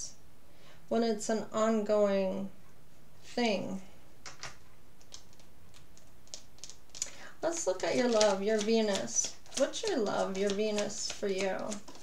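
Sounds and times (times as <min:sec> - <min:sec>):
cards clicking: 0:04.3 - 0:12.0.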